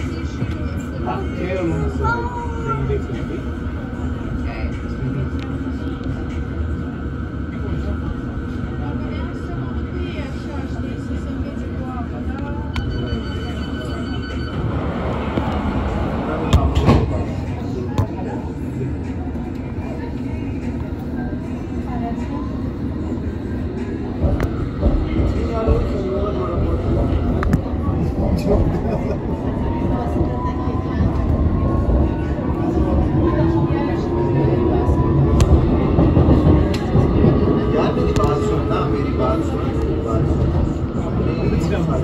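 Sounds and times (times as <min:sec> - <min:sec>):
passengers' voices: 0:00.0 - 0:42.0
train interior low hum: 0:00.0 - 0:42.0.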